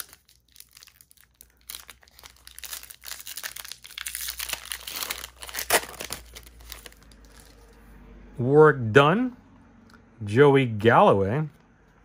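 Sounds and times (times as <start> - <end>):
foil wrapper crinkling and tearing: 0.0 - 7.6.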